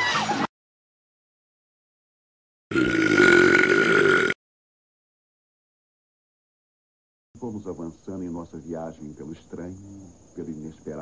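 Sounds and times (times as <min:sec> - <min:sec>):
monster roar: 0:02.7 - 0:04.4.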